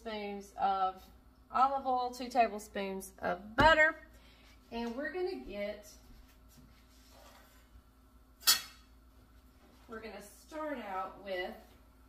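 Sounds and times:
dish clinking on stone countertop: 8.4s - 8.9s.

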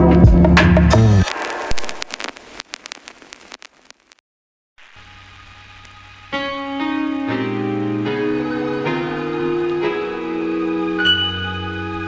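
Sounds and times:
vinyl crackle: 1.2s - 4.2s, 4.8s - 6.7s.

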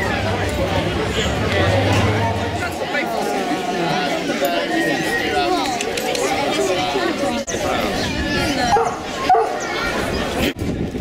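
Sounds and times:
crowd chatter: 0.0s - 11.0s
hounds barking and whining: 8.7s - 9.6s.

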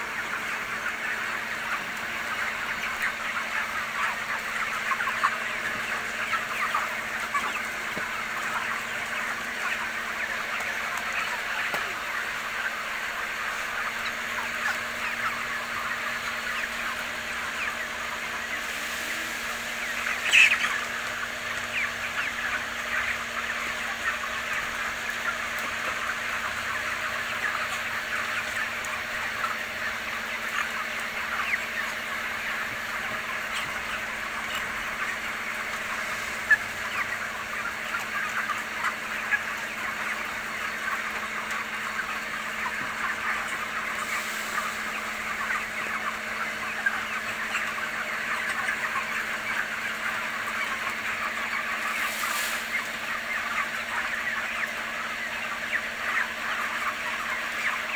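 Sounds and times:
chickens chattering: 0.0s - 57.9s.

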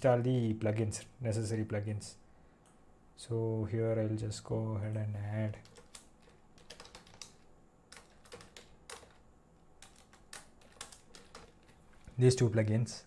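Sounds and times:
faint computer keyboard typing: 4.9s - 12.3s.

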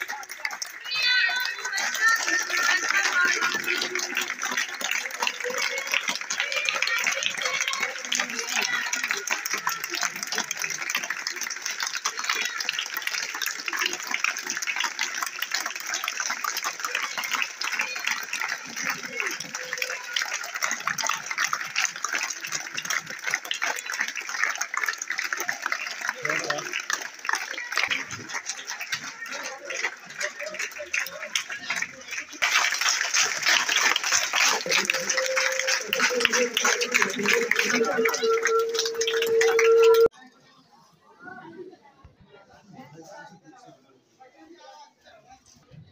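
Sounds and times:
children's voices: 0.0s - 14.7s, 16.2s - 21.7s, 26.7s - 32.4s
children clapping: 0.0s - 40.1s.

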